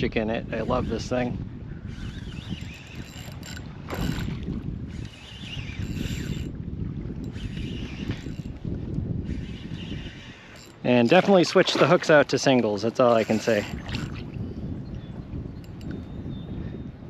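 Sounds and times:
wind on microphone: 0.0s - 17.0s
fishing reel cranking: 0.5s - 6.6s, 7.2s - 11.5s, 12.8s - 14.3s, 15.6s - 16.1s.

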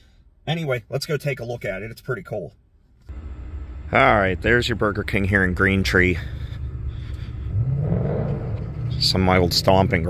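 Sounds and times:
steady low rumble: 2.7s - 10.0s
car passing: 3.1s - 10.0s.

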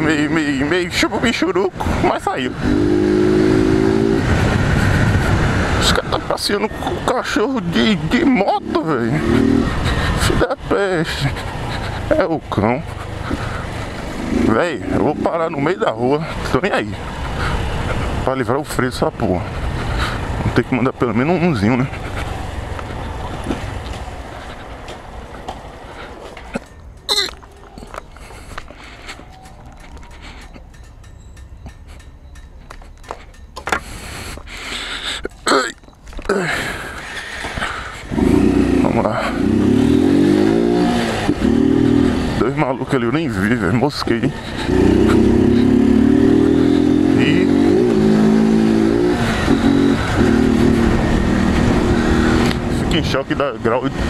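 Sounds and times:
motorcycle slowing to a stop: 0.0s - 34.7s, 35.3s - 54.0s
person coughing: 27.1s - 27.4s, 35.3s - 35.8s
motorcycle engine running: 38.1s - 54.0s.

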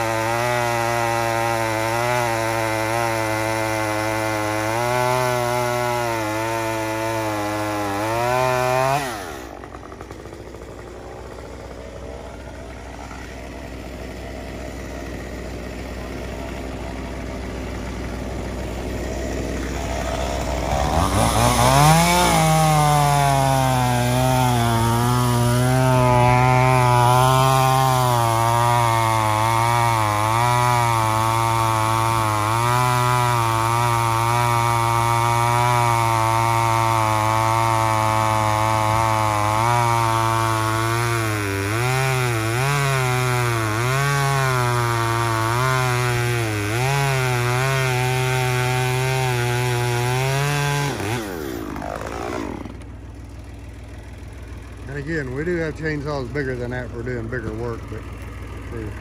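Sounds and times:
chainsaw cutting through log: 0.0s - 59.0s.

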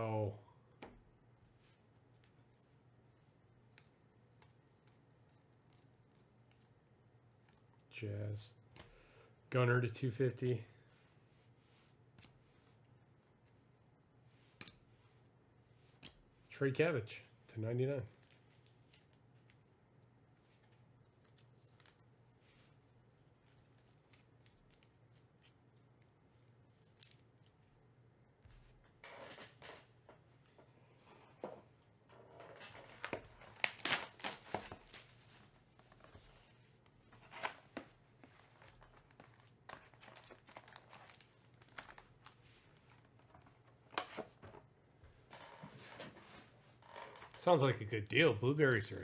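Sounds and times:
cardboard tearing: 32.9s - 35.1s
foil packs crinkling: 32.9s - 35.1s, 38.6s - 42.4s.

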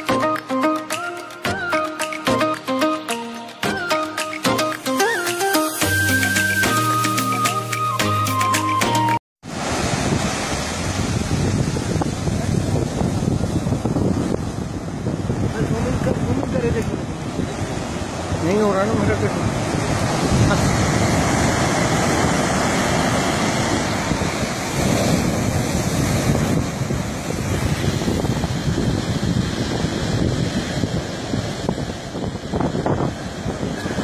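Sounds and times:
sea surf breaking on beach: 0.9s - 8.1s, 9.0s - 34.0s
wind buffeting microphone: 9.5s - 34.0s.

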